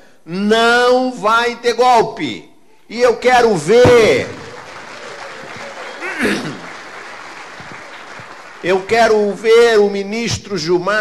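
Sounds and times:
audience applauding: 4.1s - 9.6s.

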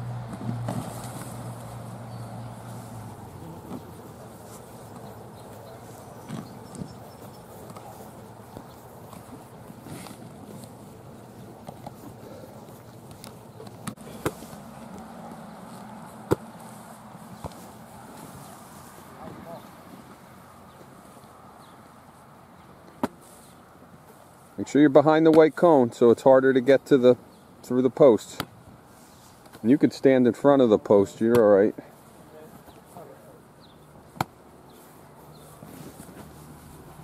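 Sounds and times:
steady low hum: 0.0s - 24.6s.

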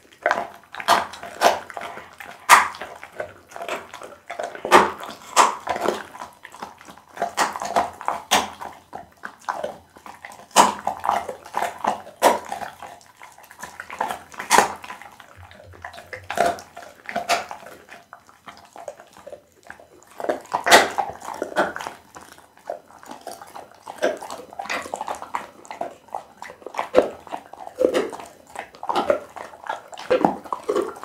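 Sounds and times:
dog chewing food: 0.0s - 31.0s.

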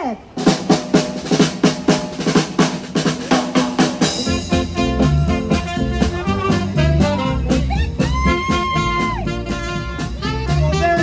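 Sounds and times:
swing band playing: 0.2s - 11.0s
drum kit beating: 0.3s - 11.0s
bass line: 4.0s - 11.0s.

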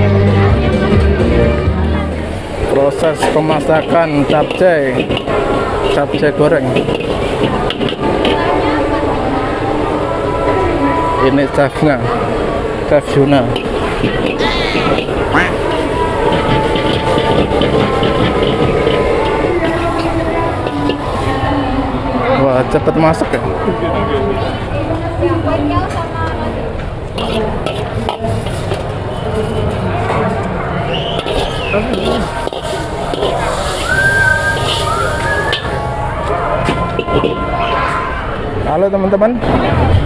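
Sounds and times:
crowd chatter: 0.0s - 40.0s
frying sizzle: 2.3s - 8.8s, 13.0s - 21.6s, 31.1s - 36.0s
gas wok burner rushing: 2.4s - 9.1s, 13.2s - 21.7s, 27.0s - 30.2s, 30.9s - 36.0s
metal ladle clanking: 27.2s - 29.0s, 31.1s - 33.8s.

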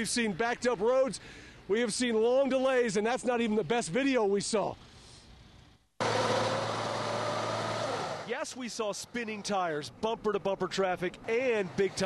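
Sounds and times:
truck engine roaring: 6.0s - 8.4s
truck wheels spinning on snow: 6.0s - 8.4s.

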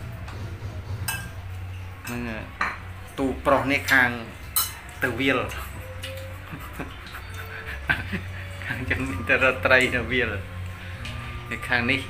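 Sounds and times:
spoon clinking on plate: 4.5s - 6.2s.

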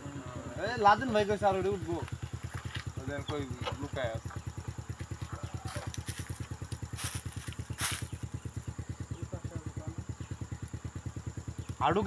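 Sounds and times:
small engine idling: 0.0s - 12.0s.

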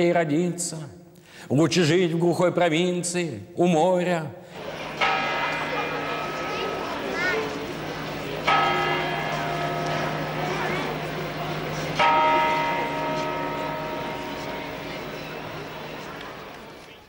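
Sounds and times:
large bronze bell struck: 5.0s - 16.2s.

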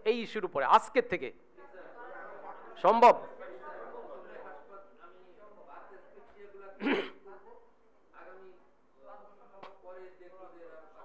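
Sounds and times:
person coughing: 6.8s - 7.2s.

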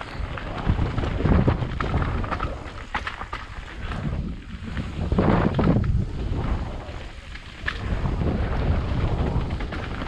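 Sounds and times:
rumble of bike tyres on dirt: 0.0s - 10.0s
wind buffeting microphone: 0.0s - 10.0s.

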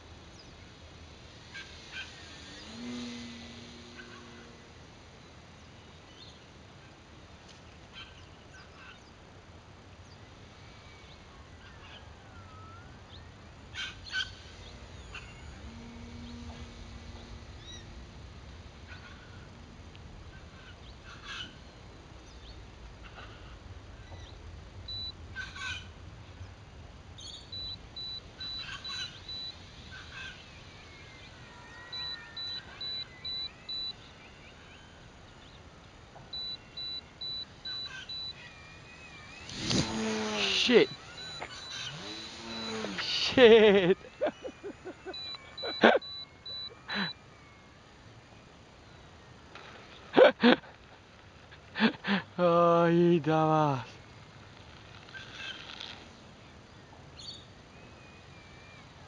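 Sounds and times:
faint outdoor background noise: 0.0s - 59.0s
birds chirping and calling: 11.1s - 18.0s, 27.2s - 47.1s
short high pips: 36.4s - 47.2s.

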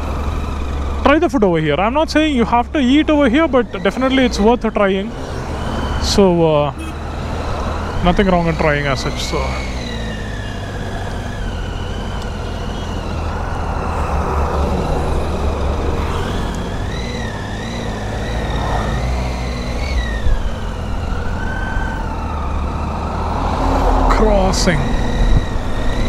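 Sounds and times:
motorcycle engine running: 0.0s - 23.3s, 24.0s - 26.0s
road rumble: 0.0s - 26.0s
wind: 0.0s - 26.0s.

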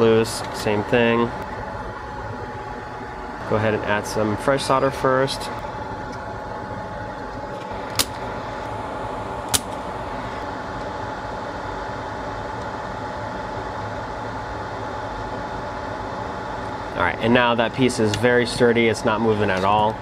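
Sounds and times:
fan hum: 0.0s - 20.0s
thin steady whine: 0.0s - 20.0s.

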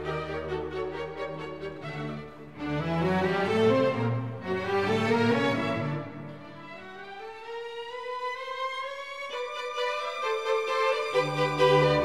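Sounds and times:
orchestral music: 0.0s - 12.0s.

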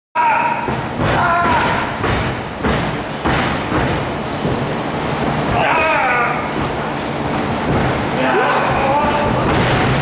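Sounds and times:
heavy thuds on wrestling ring: 0.5s - 4.6s.

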